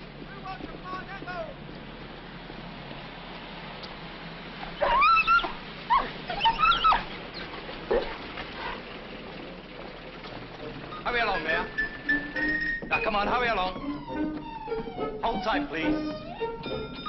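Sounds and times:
dog whining and yelping: 0:04.6 - 0:08.8, 0:13.6 - 0:15.2.

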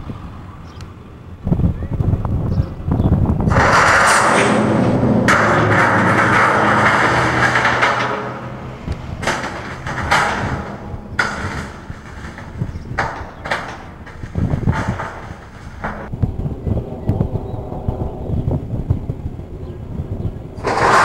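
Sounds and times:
metal tank scraping over pavement: 0:03.4 - 0:16.1, 0:20.6 - 0:21.0
tank rolling knocks: 0:03.4 - 0:16.2, 0:20.6 - 0:21.0
sudden blast: 0:03.5 - 0:13.2.

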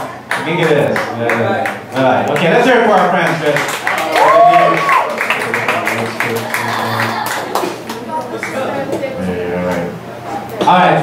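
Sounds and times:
audience clapping and cheering: 0:00.2 - 0:08.6.

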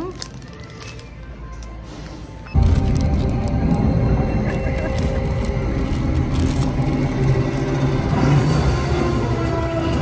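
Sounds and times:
film soundtrack low rumble: 0:02.5 - 0:10.0.

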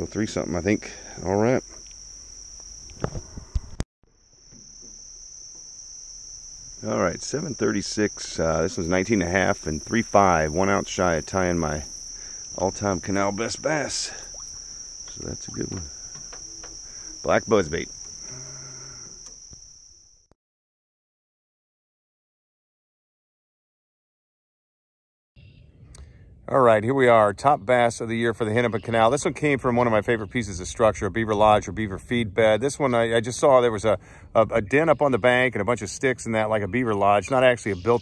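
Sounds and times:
insects droning: 0:00.0 - 0:20.4, 0:26.5 - 0:38.0.

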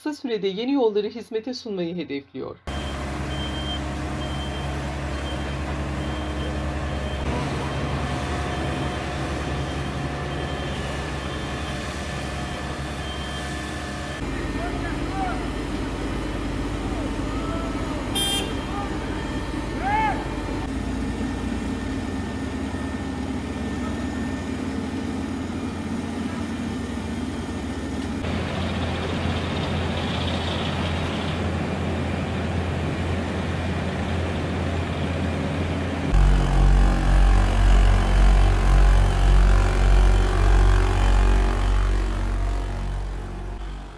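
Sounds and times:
diesel engines of road machinery: 0:02.6 - 0:43.9
roller engine throbbing: 0:02.7 - 0:43.9.

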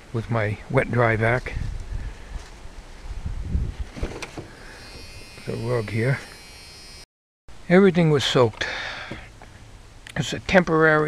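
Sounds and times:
wind rumble: 0:00.5 - 0:04.3
microphone handling noise: 0:01.4 - 0:06.4.

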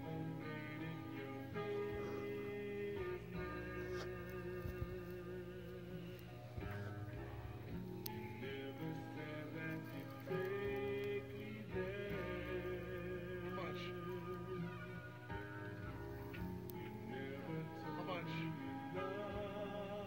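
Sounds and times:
music from a vinyl record: 0:00.0 - 0:20.0.

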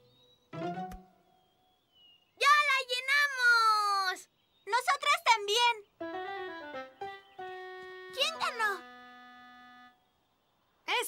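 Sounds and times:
cartoon music cue: 0:00.6 - 0:01.1.

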